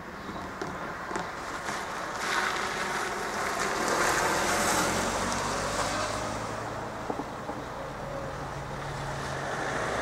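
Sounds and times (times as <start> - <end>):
tyre and engine noise: 0.0 - 10.0
car driving past: 2.3 - 10.0.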